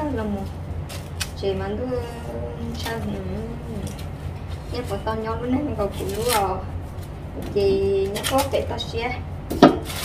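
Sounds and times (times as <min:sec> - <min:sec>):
people talking: 0:00.0 - 0:00.5, 0:01.4 - 0:04.0, 0:04.7 - 0:06.7, 0:07.4 - 0:09.2
corn husks rustling and tearing: 0:00.1 - 0:08.8, 0:09.8 - 0:10.0.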